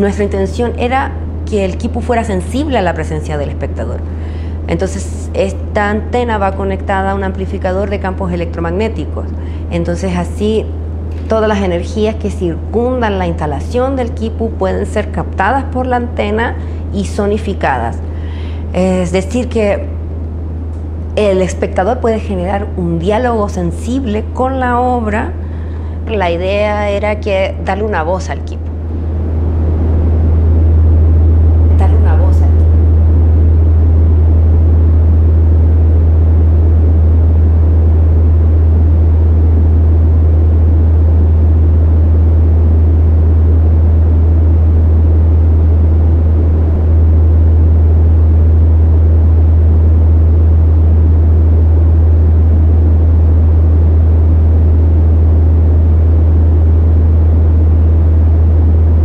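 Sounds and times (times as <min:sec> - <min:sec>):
deep hum with grainy noise: 0:00.0 - 0:59.0.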